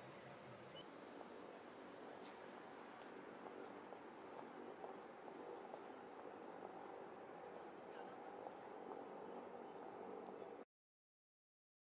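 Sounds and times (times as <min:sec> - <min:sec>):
low street murmur: 0:00.0 - 0:10.6.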